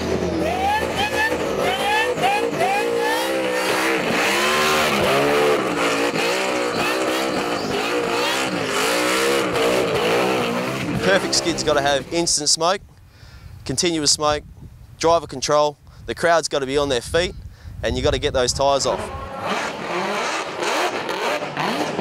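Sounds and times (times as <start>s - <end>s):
car engine revving hard: 0.0s - 11.8s, 18.8s - 22.0s.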